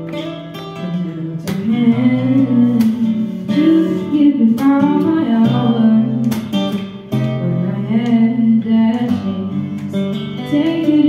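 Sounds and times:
strummed acoustic guitar: 0.0s - 11.0s
young woman singing: 0.7s - 11.0s.

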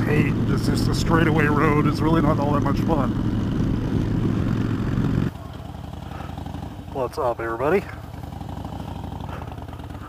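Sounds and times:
motorcycle cruising: 0.0s - 10.0s
motorcycle engine idling: 0.0s - 10.0s.

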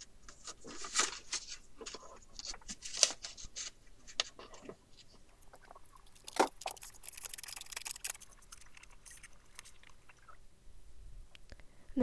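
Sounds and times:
paper rustling and sliding: 0.2s - 5.2s
paper handling clicks: 0.3s - 4.4s.

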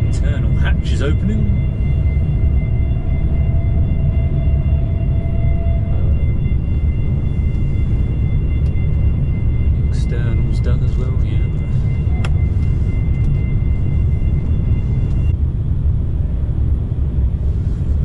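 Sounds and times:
low rumble on ferry deck: 0.0s - 18.0s
steady high whine: 0.0s - 18.0s.

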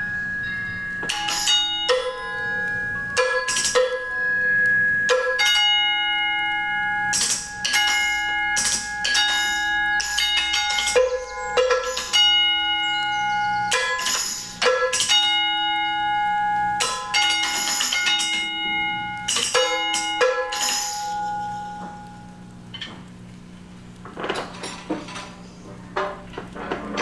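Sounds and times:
struck metal ringing: 0.0s - 22.0s.

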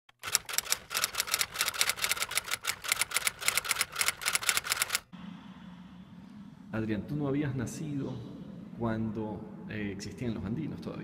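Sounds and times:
rapid mechanical clicks: 0.1s - 5.1s
faint low hum: 5.1s - 11.0s.

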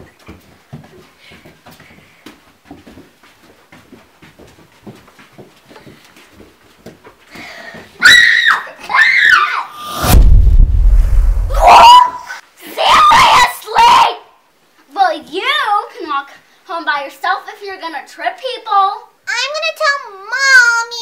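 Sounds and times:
footsteps on carpet: 0.0s - 8.0s
child shrieking: 8.0s - 9.9s, 11.5s - 14.2s
loud low rumble: 9.8s - 11.7s.

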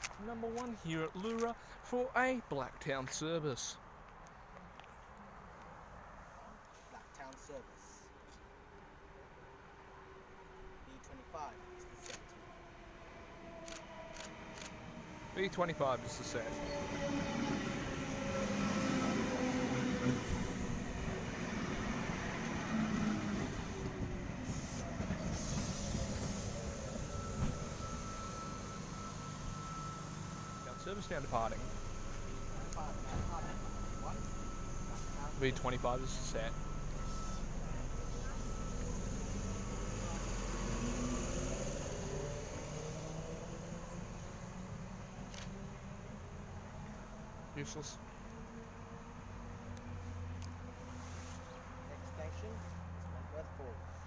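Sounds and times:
electric train hum: 8.9s - 54.0s.

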